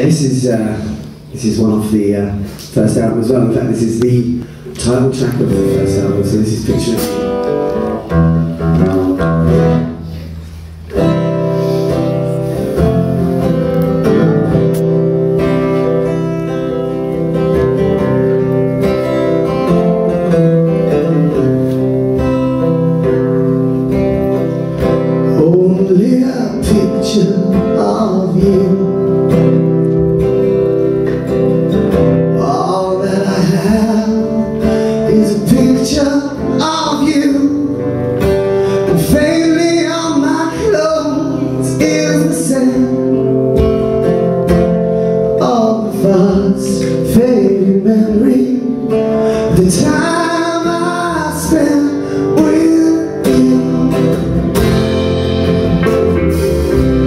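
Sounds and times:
acoustic guitar strumming: 0.0 - 57.0
full band playing: 0.0 - 57.0
electric guitar: 4.0 - 57.0.

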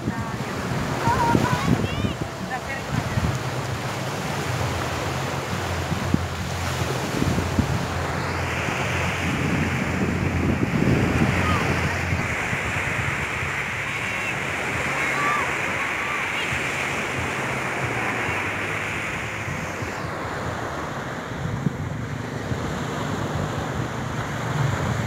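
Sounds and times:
surf washing on beach: 0.0 - 25.0
wind buffeting microphone: 0.0 - 25.0.

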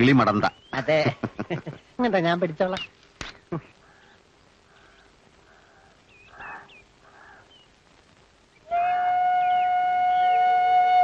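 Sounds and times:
faint bird chirps: 3.8 - 7.8
flute playing long note: 8.7 - 11.0.

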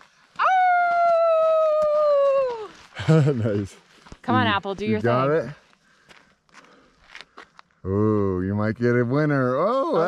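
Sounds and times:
soft footsteps on dirt: 0.0 - 7.8
woman speaking: 4.2 - 5.3.

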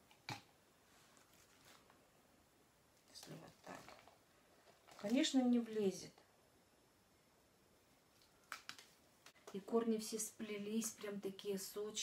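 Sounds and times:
plastic pot rustling: 3.1 - 5.6.

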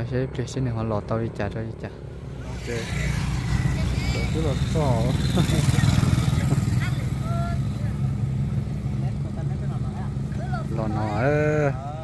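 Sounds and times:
motorbike engine running: 2.6 - 11.2.

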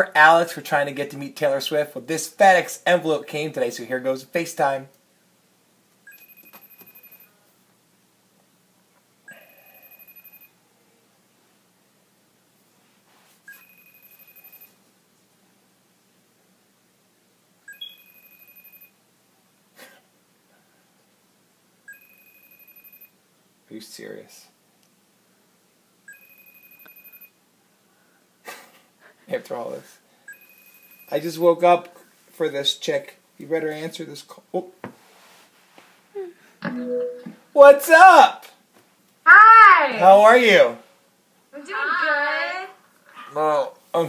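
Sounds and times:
high electronic ring tone: 6.1 - 7.4, 9.3 - 10.6, 13.5 - 14.8, 17.7 - 19.0, 21.9 - 23.2, 26.1 - 27.4, 30.3 - 31.3, 36.7 - 37.4
short beep: 36.7 - 37.4.

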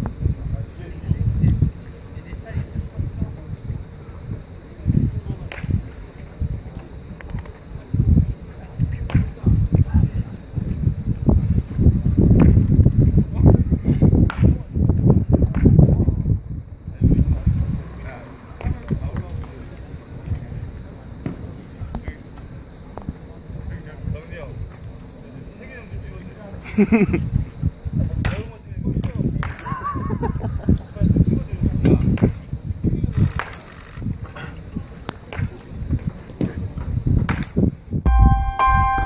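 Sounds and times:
electronic chime jingle: 38.1 - 39.0.

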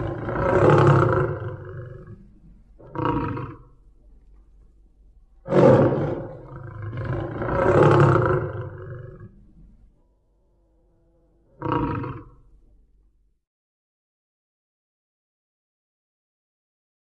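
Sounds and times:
big cat roaring: 0.0 - 3.7, 5.4 - 9.4, 10.6 - 12.4.

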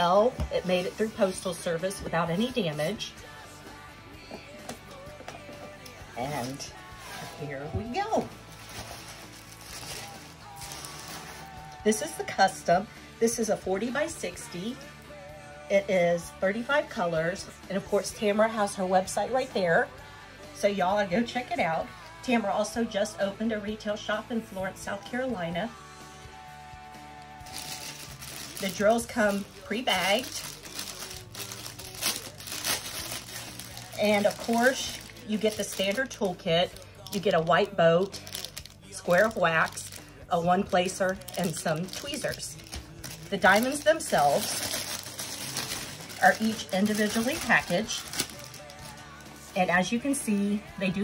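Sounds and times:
plastic sleeve crinkling: 0.0 - 3.2, 6.2 - 11.8, 27.4 - 50.4
quiet background music: 0.0 - 51.0
canvas unrolling: 6.3 - 11.6.

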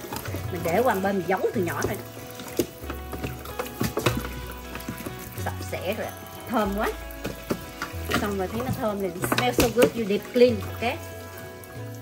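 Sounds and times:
background music with low bass: 0.0 - 12.0
tap water running into sink: 0.0 - 12.0.

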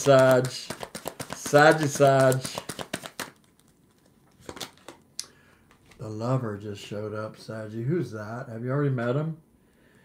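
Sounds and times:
card clicks: 0.0 - 5.0
cards rattling: 0.0 - 5.0.

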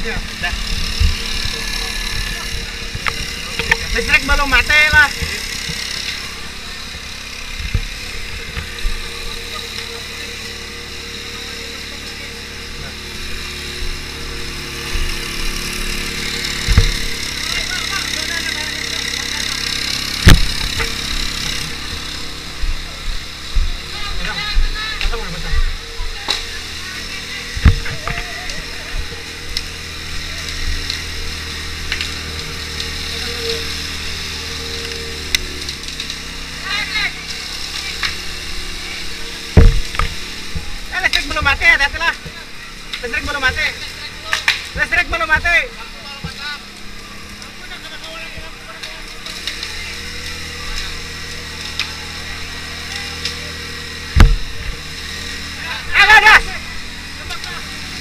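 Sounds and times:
fire engine motor running: 0.0 - 58.0
people shouting: 55.5 - 58.0.

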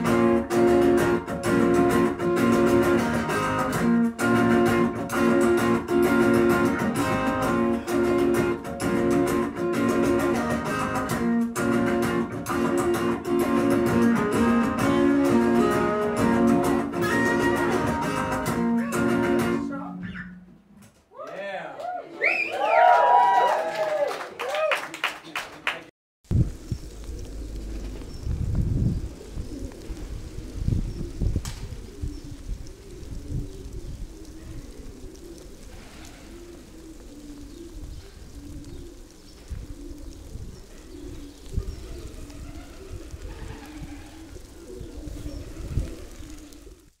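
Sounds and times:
low bird calls: 19.8 - 20.6, 26.5 - 47.0
low rumble: 26.3 - 31.4.

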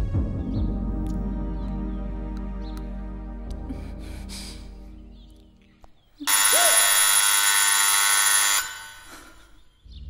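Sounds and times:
electric buzzer: 6.3 - 9.4.

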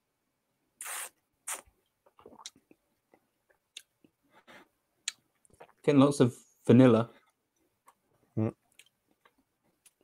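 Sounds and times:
person slurping from a glass: 0.8 - 1.6.

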